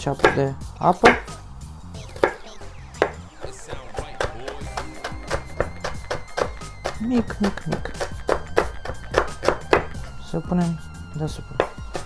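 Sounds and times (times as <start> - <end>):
knife chopping on wooden board: 0.0 - 1.3, 2.2 - 2.4, 4.2 - 10.1, 11.6 - 12.0
background music: 0.0 - 12.0.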